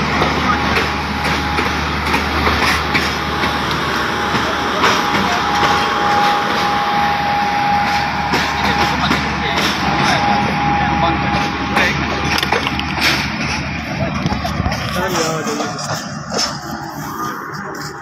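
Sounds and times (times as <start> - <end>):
people's voices: 0.0 - 18.0
steady train noise: 0.0 - 18.0.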